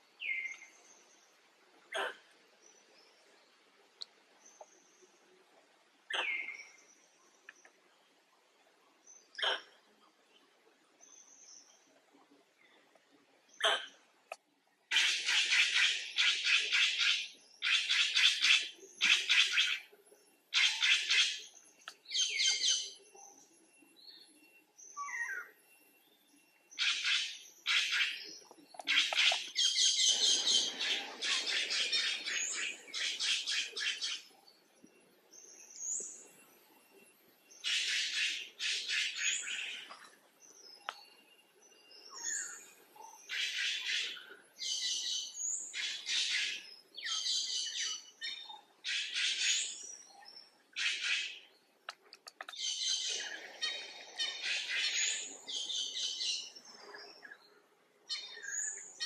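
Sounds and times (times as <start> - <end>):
birds chattering: 26.7 - 36.5, 41.8 - 59.0.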